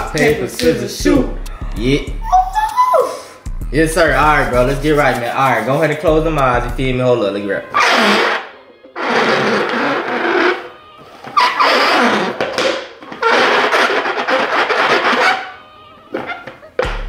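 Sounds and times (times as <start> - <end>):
bowls scraping on stone countertop: 7.8 - 16.6.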